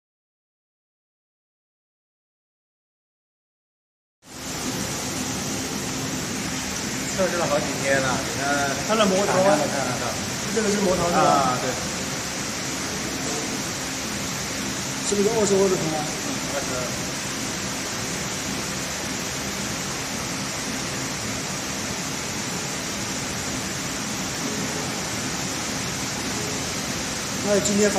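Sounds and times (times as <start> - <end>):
even hiss: 4.3 - 27.9.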